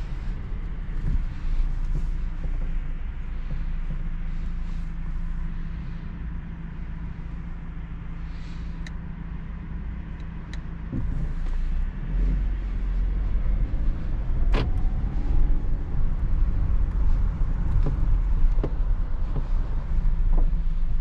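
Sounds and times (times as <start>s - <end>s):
car engine and road rumble: 0.0s - 21.0s.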